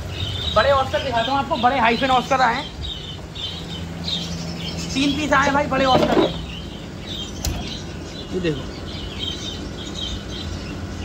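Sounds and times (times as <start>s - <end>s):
small birds chirping: 0.0s - 11.0s
steady low hum: 0.0s - 11.0s.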